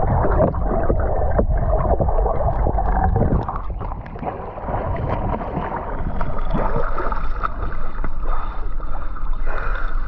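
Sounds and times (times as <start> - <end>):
underwater churning water and bubbles: 0.0 - 10.0.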